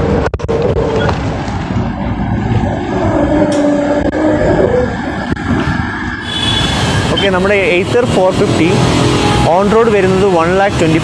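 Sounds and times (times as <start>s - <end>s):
wind and road rumble: 0.0s - 11.0s.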